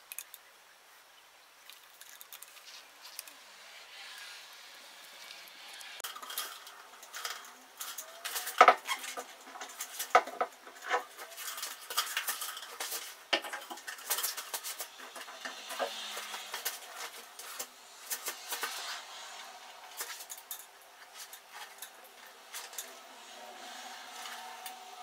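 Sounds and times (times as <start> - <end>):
plastic jars knocking and clicking: 6.0 - 18.8.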